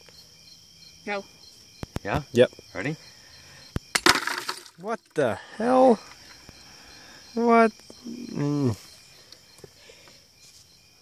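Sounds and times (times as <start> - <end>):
glass bottle cracking: 3.9 - 4.8.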